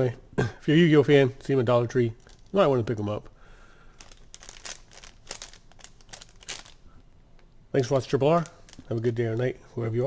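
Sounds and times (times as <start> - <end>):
plastic wrapper crinkling: 2.0 - 3.2, 4.0 - 6.9, 7.8 - 9.4.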